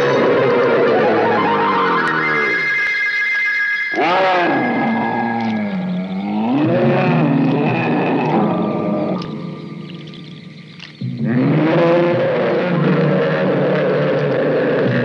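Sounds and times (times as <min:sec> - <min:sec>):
eerie electronic horror music: 0:00.0 - 0:15.0.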